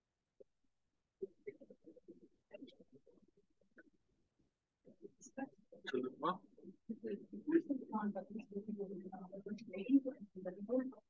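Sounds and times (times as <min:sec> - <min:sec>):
faint muffled voice: 0:01.2 - 0:04.0, 0:04.9 - 0:11.0.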